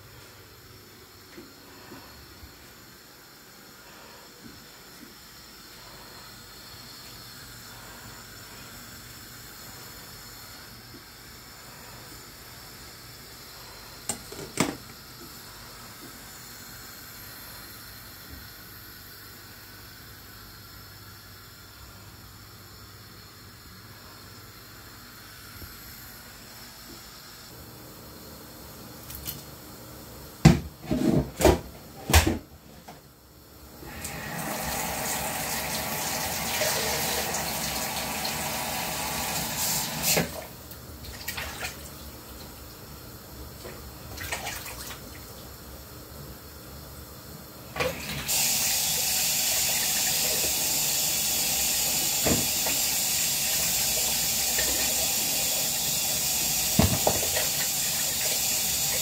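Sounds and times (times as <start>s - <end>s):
steamer pot hissing: 33.4s - 40.5s, 47.5s - 59.0s.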